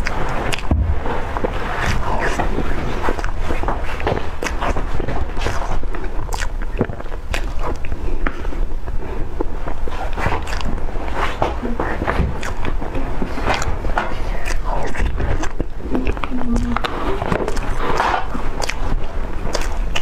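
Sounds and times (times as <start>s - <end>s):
wet mouth smacking and squishing: 0.0s - 0.7s, 1.7s - 8.5s, 9.4s - 11.4s, 12.1s - 20.0s.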